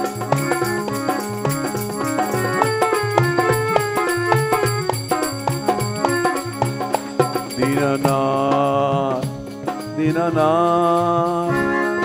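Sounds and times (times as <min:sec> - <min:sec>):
instrumental drone: 0:00.0 - 0:10.2
man singing devotional song: 0:04.9 - 0:12.0.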